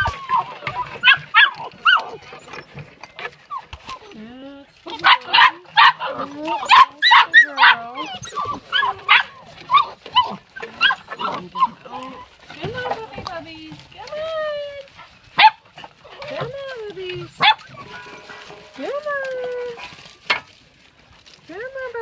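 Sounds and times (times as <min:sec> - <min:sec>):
puppies yipping and whining: 0:00.0 - 0:20.4.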